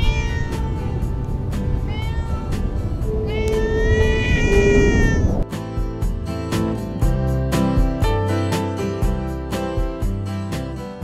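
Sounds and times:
cat meowing: 0:00.0 - 0:01.2, 0:01.8 - 0:05.4
background music: 0:00.0 - 0:11.0.

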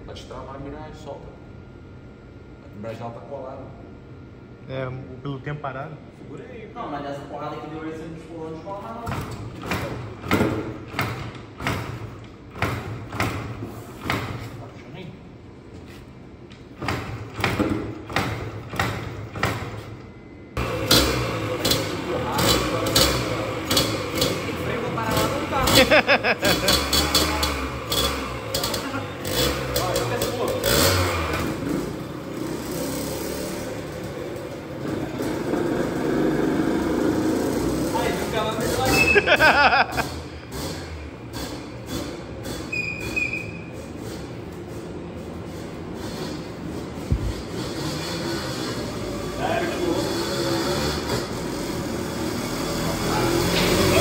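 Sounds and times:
dirt bike engine turning over: 0:20.6 - 0:44.8, 0:45.4 - 0:54.0.

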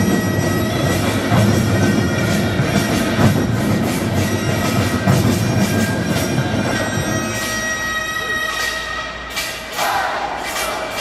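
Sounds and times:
many drums beaten together: 0:00.0 - 0:11.0.

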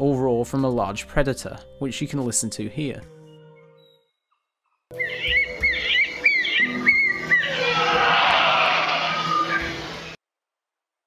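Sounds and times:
bird chirping calls: 0:04.9 - 0:10.2
rushing roar of tail feathers: 0:07.6 - 0:10.2.

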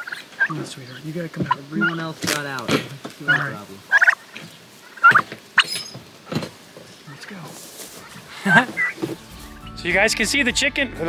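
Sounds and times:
turkeys calling: 0:00.0 - 0:10.2.

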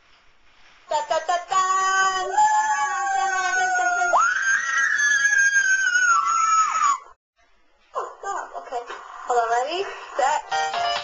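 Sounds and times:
high voice singing long notes: 0:00.9 - 0:06.7.

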